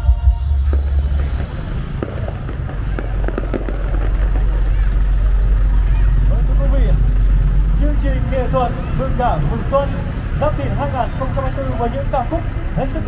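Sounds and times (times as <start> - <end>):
low rumble: 0.0 - 9.6
crowd voices: 0.0 - 13.0.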